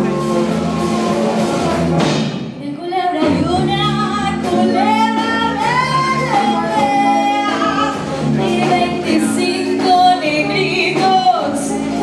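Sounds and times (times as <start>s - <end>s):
live band playing: 0.0s - 12.0s
woman singing sliding notes: 2.6s - 12.0s.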